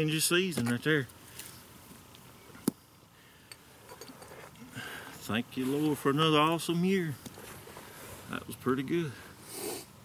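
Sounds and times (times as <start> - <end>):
faint handling noise: 3.5 - 8.4.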